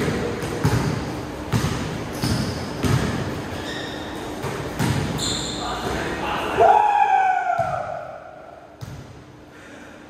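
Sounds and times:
basketball bouncing on court: 0:00.0 - 0:03.4, 0:04.4 - 0:05.2, 0:07.5 - 0:08.1, 0:08.8 - 0:09.2
sneaker squeak: 0:01.5 - 0:06.0.

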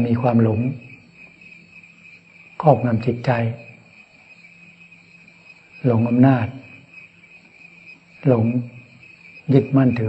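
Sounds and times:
man speaking: 0:00.0 - 0:01.0, 0:02.6 - 0:03.7, 0:05.8 - 0:06.6, 0:08.2 - 0:08.8, 0:09.5 - 0:10.0
crickets chirping: 0:00.0 - 0:10.0.

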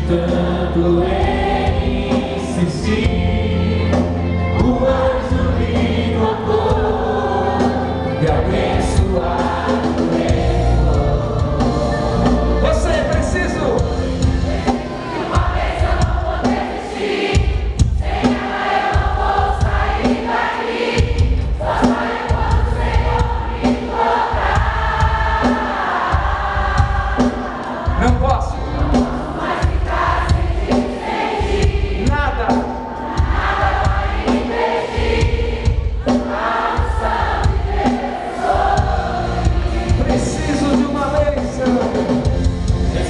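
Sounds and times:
congregation singing: 0:00.0 - 0:43.0
steady drum beat: 0:00.0 - 0:43.0.

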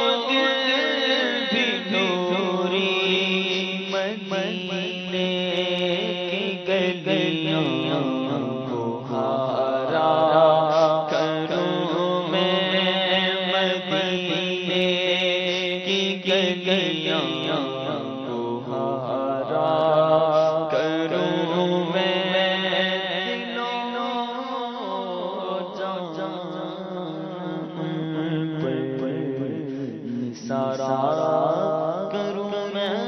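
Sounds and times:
man singing without instruments: 0:00.0 - 0:33.0.

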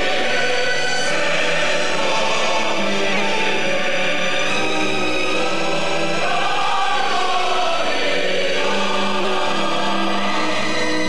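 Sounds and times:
choir singing held chords: 0:00.0 - 0:11.0.

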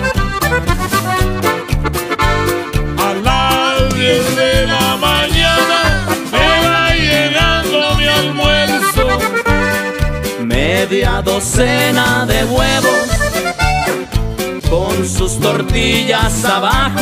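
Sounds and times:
bass and drums beat: 0:00.0 - 0:17.0
button accordion melody: 0:00.0 - 0:17.0.

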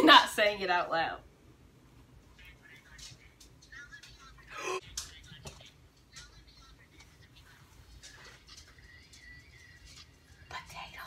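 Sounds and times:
low room noise: 0:00.0 - 0:11.0
person whispering: 0:10.4 - 0:11.0.

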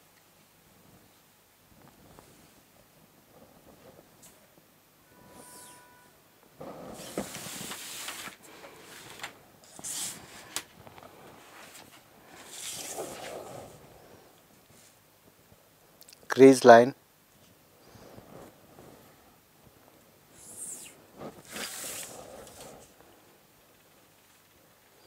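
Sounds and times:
paper sliding and rustling: 0:06.6 - 0:13.8, 0:20.4 - 0:22.9.

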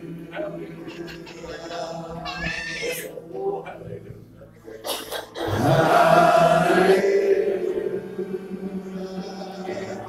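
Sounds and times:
congregation worshipping: 0:00.0 - 0:10.0
high wavering cry: 0:00.6 - 0:03.2.

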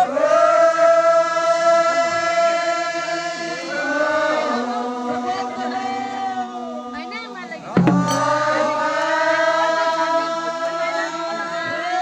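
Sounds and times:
group chanting held notes: 0:00.0 - 0:12.0.

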